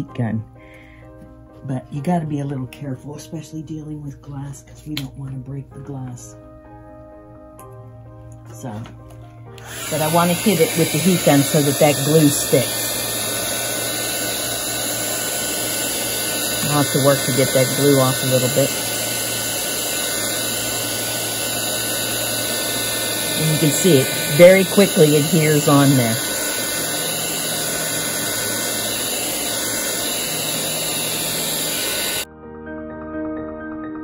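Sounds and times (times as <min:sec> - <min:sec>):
heat gun fan blowing air: 0:09.6 - 0:32.3.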